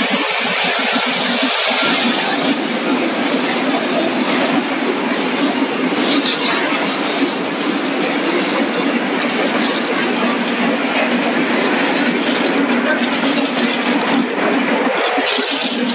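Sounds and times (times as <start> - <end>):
production line machinery humming: 0.0 - 15.9.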